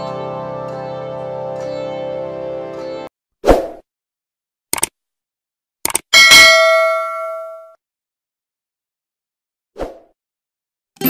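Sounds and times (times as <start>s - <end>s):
clicks: 5.8s - 6.1s
bell ding: 6.2s - 7.8s.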